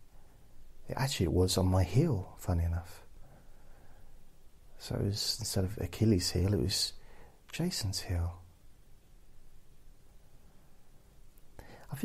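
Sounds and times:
man speaking quietly: 0:04.8 - 0:08.4, 0:11.7 - 0:12.0.

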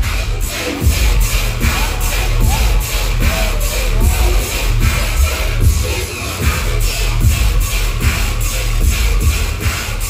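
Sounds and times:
electronic bass music: 0:00.0 - 0:10.0.

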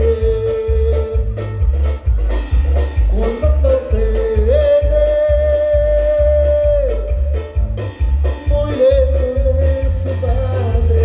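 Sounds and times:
marimba ensemble playing: 0:00.0 - 0:11.0
steady bass beat: 0:00.0 - 0:11.0.

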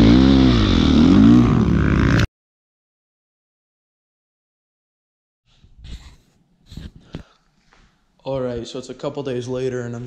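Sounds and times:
dirt bike engine revving: 0:00.0 - 0:02.3.

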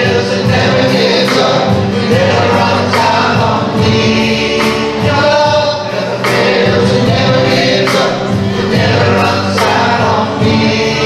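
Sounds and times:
worship band playing live: 0:00.0 - 0:11.0.

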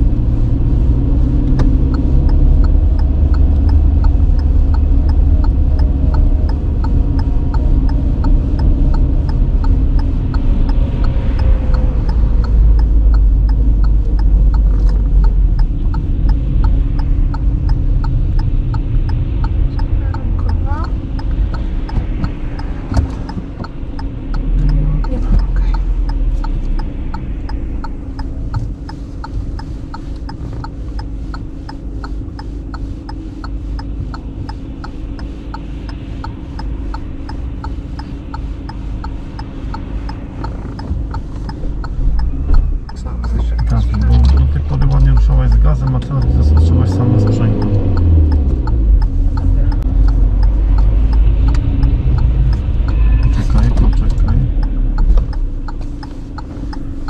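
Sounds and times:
car road and engine rumble: 0:00.0 - 0:57.0
faint regular ticking: 0:00.0 - 0:57.0.

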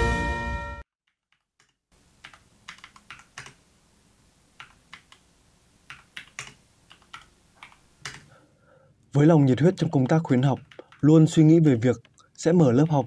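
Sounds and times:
typing on keyboard: 0:01.1 - 0:03.6, 0:05.9 - 0:08.3, 0:10.1 - 0:11.1.

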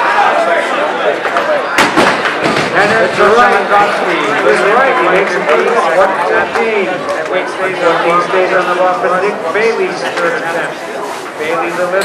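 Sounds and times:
chatter of a large hall: 0:00.0 - 0:12.0.

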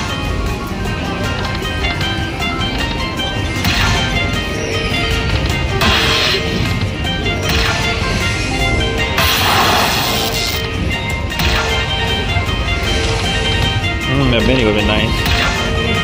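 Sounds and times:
slot machine bonus music: 0:00.0 - 0:16.0
crash-like effect: 0:09.2 - 0:10.6.

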